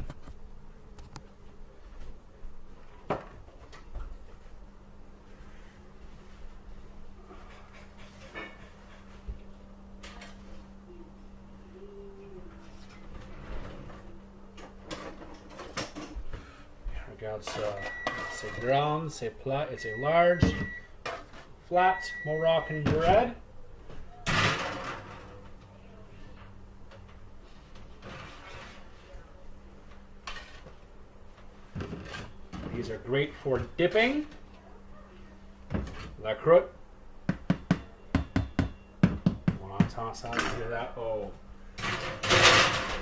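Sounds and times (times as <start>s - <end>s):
steady low hum: 0.0s - 43.0s
baking sheet scraping oven rack: 28.0s - 29.0s, 30.2s - 30.7s.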